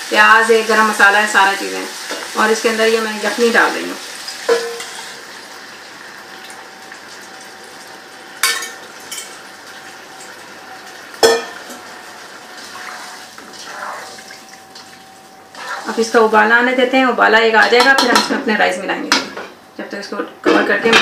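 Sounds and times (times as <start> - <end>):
spoon clinking against pot: 4.5 - 4.9, 11.2 - 11.6
pot of stock hissing on stove: 11.6 - 14.4, 15.4 - 16.3.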